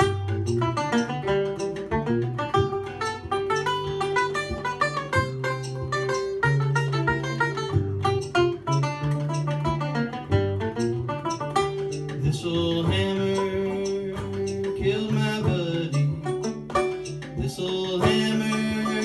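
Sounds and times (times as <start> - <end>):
banjo playing: 0.0 - 19.0.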